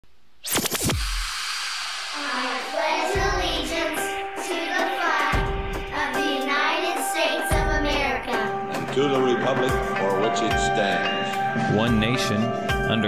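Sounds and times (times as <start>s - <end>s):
intro music with held notes: 1.9s - 13.0s
children reciting: 2.1s - 8.7s
deep low hits: 2.3s - 6.3s.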